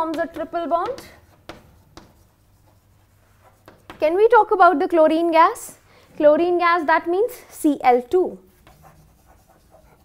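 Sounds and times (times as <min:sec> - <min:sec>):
chalk tapping on board: 0:00.0 - 0:04.4, 0:08.6 - 0:10.0
chalk writing on chalkboard: 0:00.0 - 0:04.4, 0:08.5 - 0:10.0.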